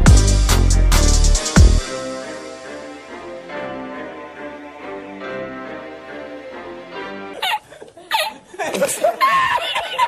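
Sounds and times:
background music: 0.0 - 7.6
man laughing heartily: 7.4 - 10.0.

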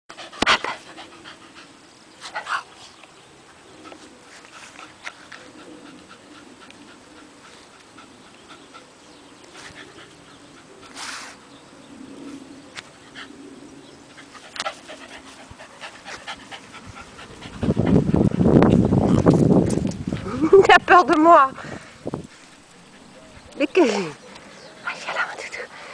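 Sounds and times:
dog panting: 0.1 - 3.0, 3.8 - 11.5, 14.0 - 18.8.

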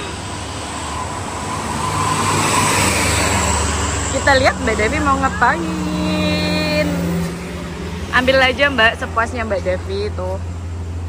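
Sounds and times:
vehicle passing on road: 0.0 - 11.0
steady low engine hum: 3.2 - 11.0.

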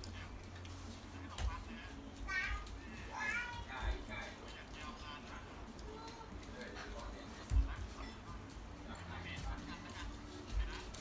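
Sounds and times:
faint children's voices: 1.3 - 8.1.

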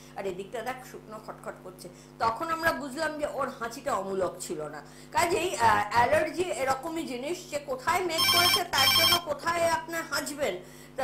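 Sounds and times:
woman talking: 0.0 - 10.7
electronic telephone ringing: 8.1 - 9.3.

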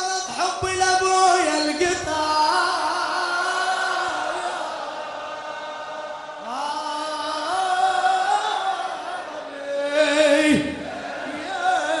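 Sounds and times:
man chanting into microphone: 0.0 - 4.5, 6.5 - 12.0.

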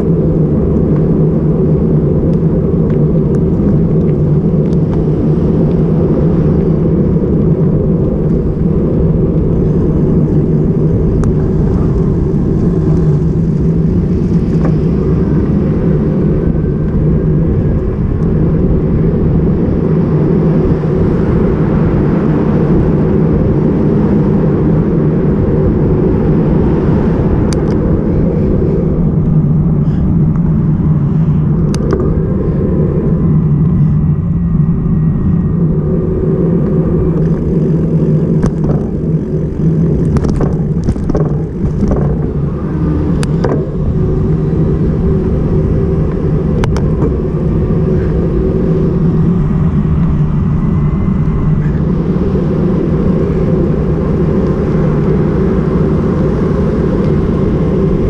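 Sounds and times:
wind and road noise rumble: 0.0 - 58.0
sharp clicks and rattles: 38.4 - 42.2.

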